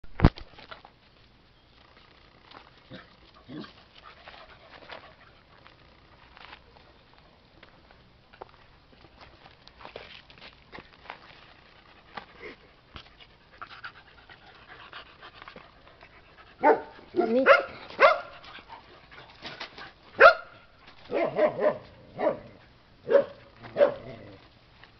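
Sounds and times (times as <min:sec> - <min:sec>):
dog barking: 0:16.6 - 0:18.3, 0:20.2 - 0:24.1.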